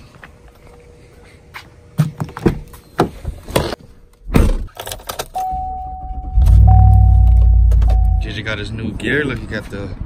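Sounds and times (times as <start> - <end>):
electronic warning chime: 5.4 - 8.6.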